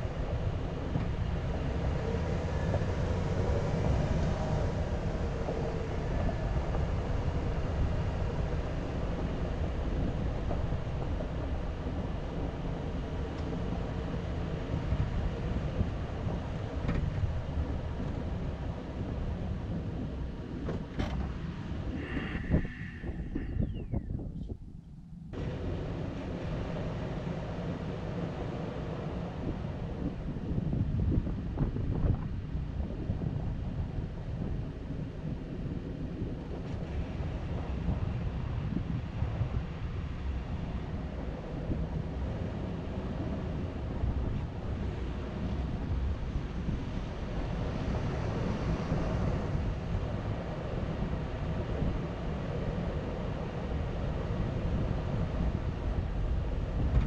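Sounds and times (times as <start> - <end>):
vehicle rumbling on dirt road: 0.0 - 57.0
wind noise on microphone: 0.0 - 57.0.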